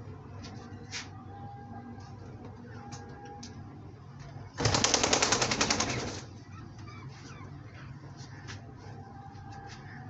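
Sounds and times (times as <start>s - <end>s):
pigeon flapping wings: 4.6s - 6.3s.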